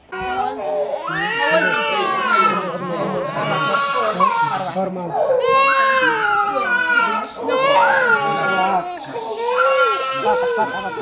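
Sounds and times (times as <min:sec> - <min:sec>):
small child crying: 0:00.2 - 0:11.0.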